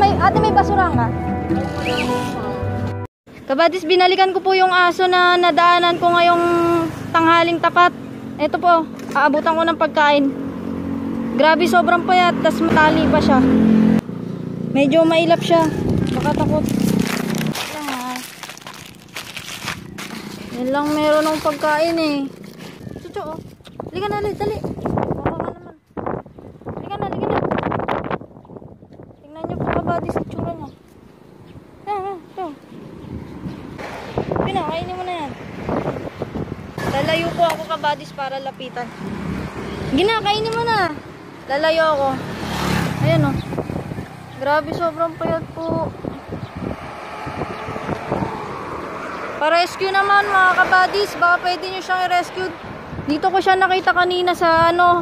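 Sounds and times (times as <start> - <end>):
road traffic: 0.0 - 55.0
faint vehicle hum: 3.3 - 27.1, 29.0 - 55.0
wind buffeting microphone: 14.6 - 55.0
plastic bag crinkling: 15.8 - 23.6.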